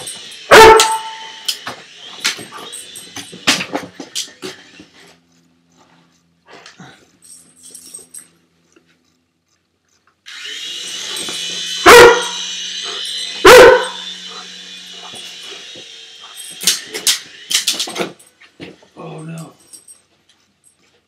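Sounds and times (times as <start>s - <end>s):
toy helicopter motor whine: 0.0s - 6.4s, 9.9s - 19.4s
puppy barking: 0.5s - 1.4s, 11.8s - 12.5s, 13.4s - 14.1s
sharp clicks and clatters: 16.4s - 18.2s.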